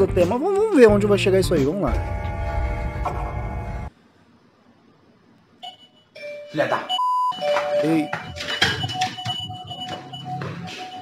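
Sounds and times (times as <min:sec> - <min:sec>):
background music: 0:00.0 - 0:02.7
electronic doorbell ringing: 0:05.6 - 0:11.0.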